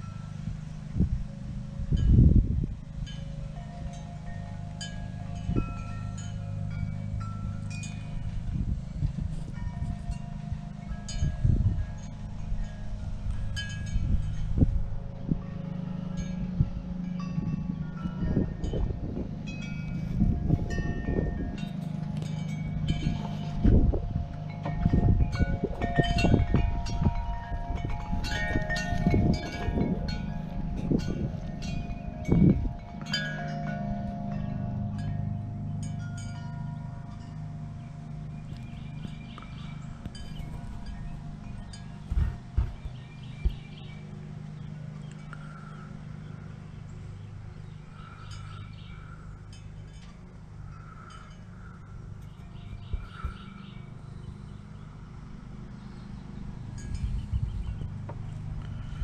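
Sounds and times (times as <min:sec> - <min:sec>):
wind buffeting microphone: 0:00.0 - 0:59.0
wind chimes ringing: 0:00.0 - 0:59.0.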